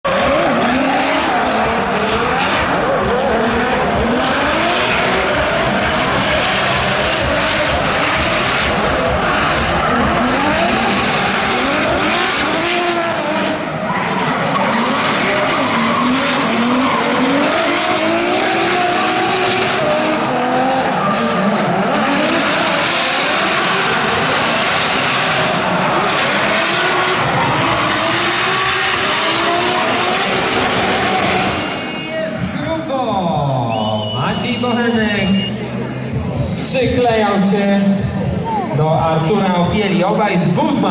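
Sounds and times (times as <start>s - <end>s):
tyres squealing and skidding: 0.0s - 32.9s, 33.7s - 35.8s
car engines revving: 0.0s - 40.9s.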